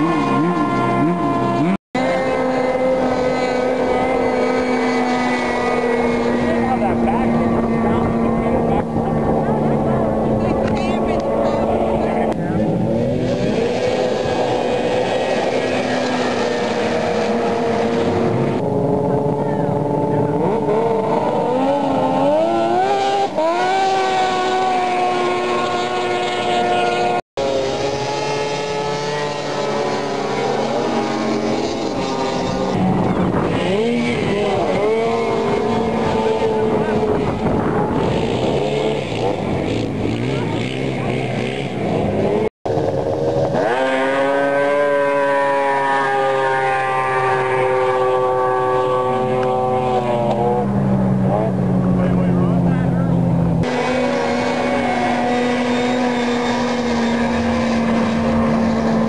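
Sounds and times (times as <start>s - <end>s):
snowmobile engines revving: 0.0s - 59.0s.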